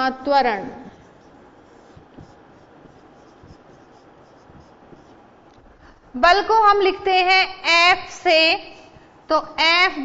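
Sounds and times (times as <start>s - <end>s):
marker scratching on whiteboard: 0.0s - 5.8s.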